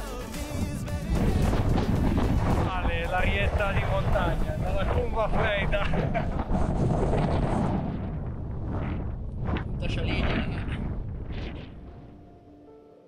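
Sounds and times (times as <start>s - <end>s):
man's voice: 0.0s - 6.2s
wind buffeting microphone: 0.5s - 12.4s.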